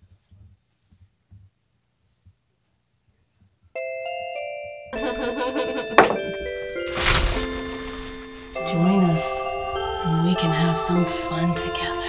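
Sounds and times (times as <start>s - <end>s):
bright bell-like chime: 3.8s - 12.0s.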